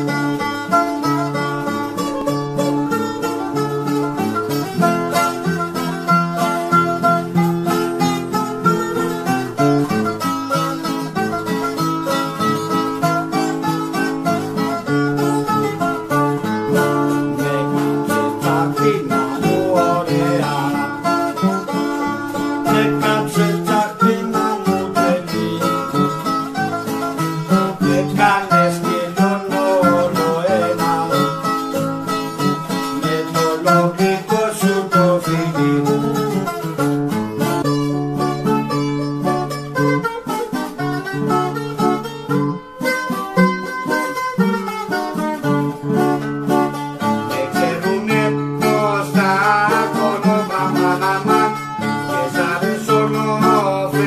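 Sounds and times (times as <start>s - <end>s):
bouzouki fast melody: 0.0s - 54.0s
strummed acoustic guitar: 0.0s - 54.0s.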